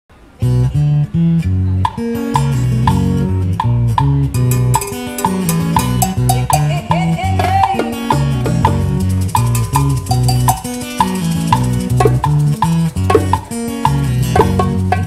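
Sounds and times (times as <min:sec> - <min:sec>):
guitar: 0:00.1 - 0:15.0
electric bass line: 0:00.3 - 0:15.0
steady percussion tick: 0:01.8 - 0:15.0.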